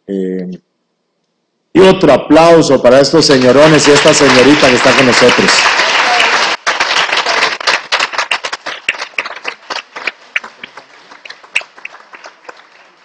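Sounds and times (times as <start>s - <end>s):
audience applause: 3.2s - 13.0s.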